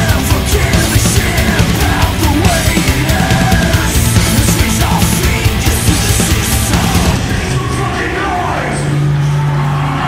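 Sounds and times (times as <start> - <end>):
drumming: 0.0 - 8.5
metal band playing live: 0.0 - 10.0.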